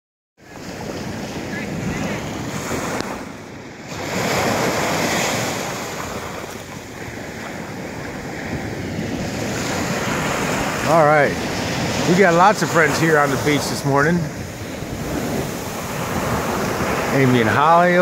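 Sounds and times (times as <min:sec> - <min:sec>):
surf breaking on sand: 0:00.4 - 0:18.0
wind buffeting microphone: 0:00.5 - 0:18.0.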